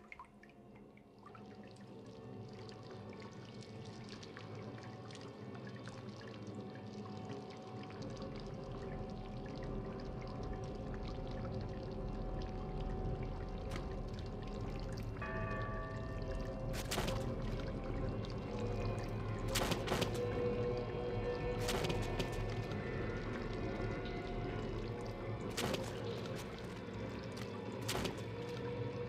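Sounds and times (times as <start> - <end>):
water pouring down walls: 21.3 - 29.0.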